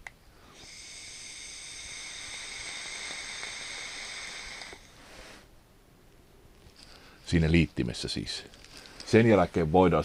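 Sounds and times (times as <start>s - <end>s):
breathy exhale: 0.3s - 5.5s
electronic cigarette hissing: 0.4s - 5.5s.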